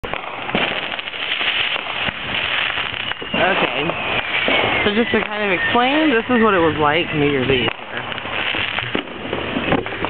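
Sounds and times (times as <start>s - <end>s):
fireworks bangs: 0.0s - 10.0s
fireworks crackling: 0.0s - 10.0s.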